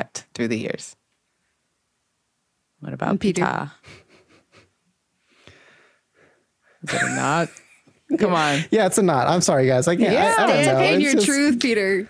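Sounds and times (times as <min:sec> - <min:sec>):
man talking: 0:06.8 - 0:11.5.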